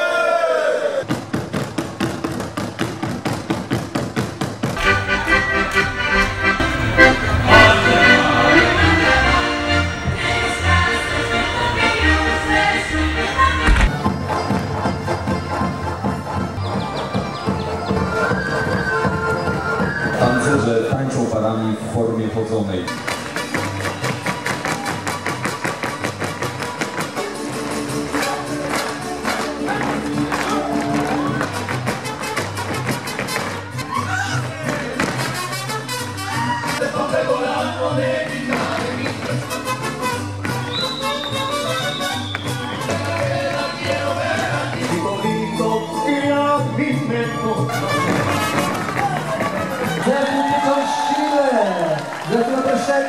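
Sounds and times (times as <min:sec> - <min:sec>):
folk dance music: 0:01.0 - 0:53.0
sustained held notes: 0:04.8 - 0:13.9
man singing: 0:42.8 - 0:48.0.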